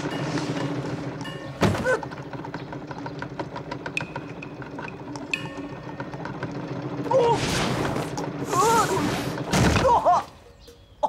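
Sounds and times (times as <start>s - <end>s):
clockwork ticking and whirring: 0.0s - 9.5s.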